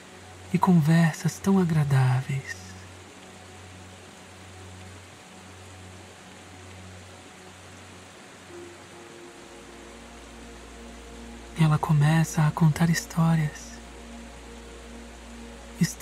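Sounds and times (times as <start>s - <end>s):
ambient meditation music: 0.0s - 16.0s
steady hiss: 0.0s - 16.0s.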